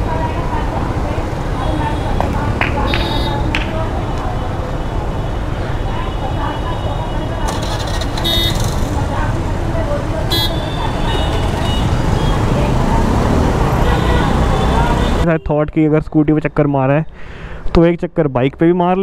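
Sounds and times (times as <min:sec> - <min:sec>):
motorbike and scooter engines: 0:00.0 - 0:15.6.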